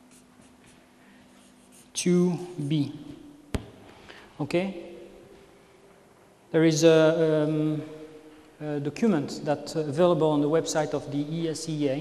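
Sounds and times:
marker scratching on paper: 0.0s - 0.8s, 1.4s - 2.1s.

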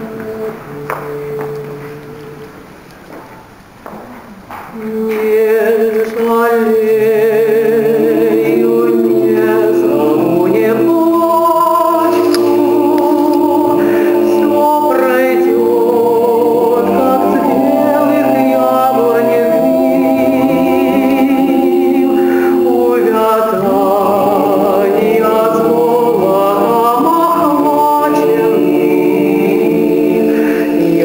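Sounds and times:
male choir singing a cappella: 0.0s - 2.6s, 4.8s - 31.0s.

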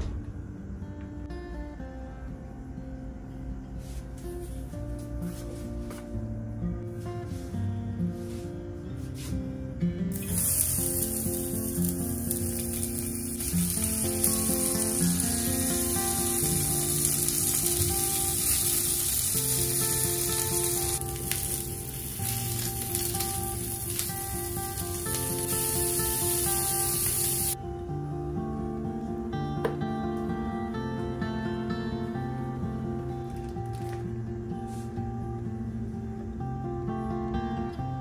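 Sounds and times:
sausages sizzling in oil: 10.1s - 27.6s.

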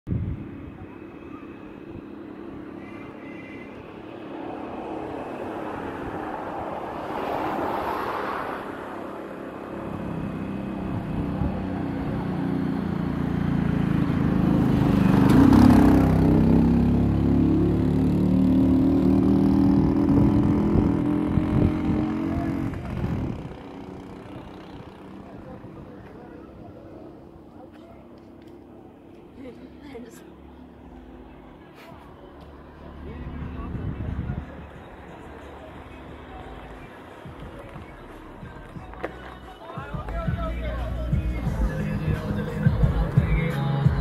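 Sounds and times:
tyre and passing vehicle noise: 0.1s - 44.0s.

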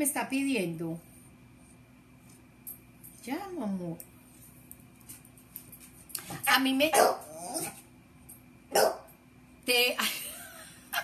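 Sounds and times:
dog barking: 6.9s - 7.8s, 8.7s - 9.1s.

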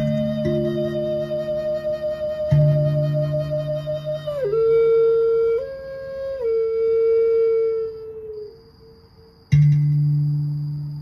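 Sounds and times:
steel tongue drum note ringing: 0.0s - 1.8s, 9.5s - 11.0s
flute holding a note: 0.0s - 8.6s.

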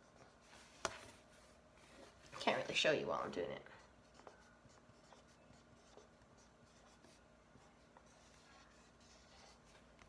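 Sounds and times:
marker drawing on whiteboard: 3.8s - 9.9s.

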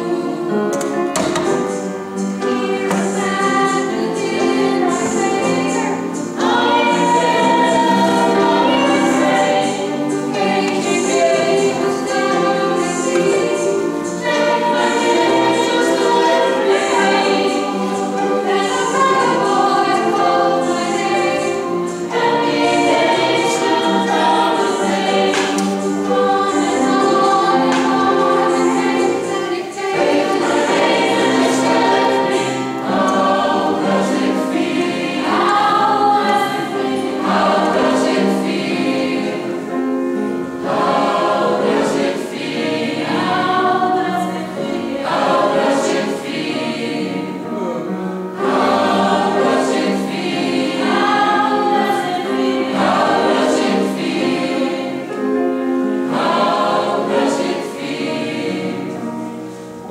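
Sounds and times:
mixed choir singing in parts: 0.0s - 59.9s.

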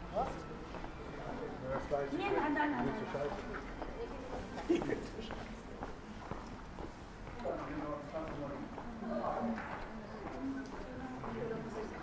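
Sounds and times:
faint chatter of passers-by: 0.0s - 12.0s.

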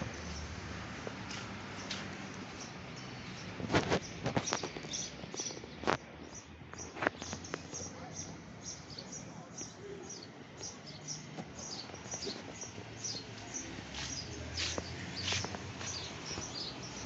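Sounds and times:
small birds chirping: 1.2s - 17.0s.

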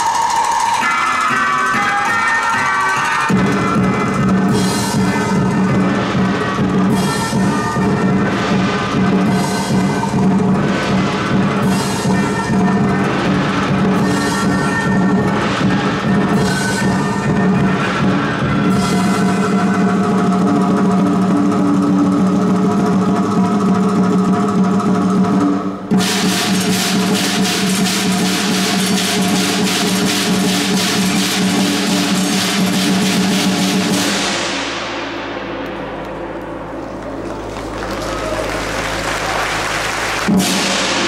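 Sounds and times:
cymbals: 0.0s - 41.0s
drum: 0.0s - 41.0s
fast drum roll: 0.0s - 41.0s
gong: 0.0s - 41.0s.

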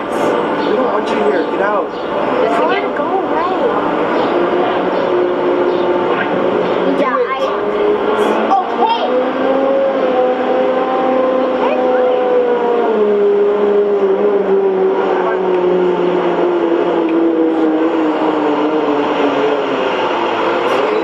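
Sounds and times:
eerie drone sinking in pitch: 0.0s - 21.0s.

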